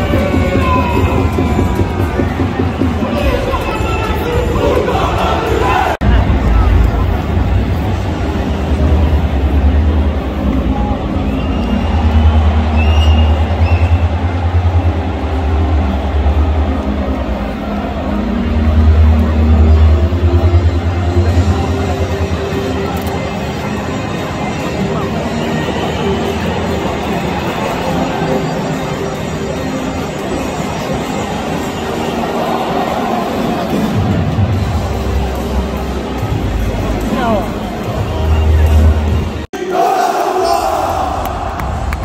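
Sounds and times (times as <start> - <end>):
deep pulsing stadium crowd rumble: 0.0 - 39.5
music over public address: 0.0 - 42.0.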